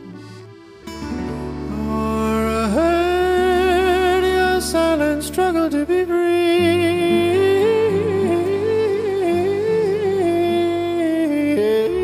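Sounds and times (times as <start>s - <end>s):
gypsy jazz melody: 0.0s - 12.0s
low accompaniment: 0.0s - 12.0s.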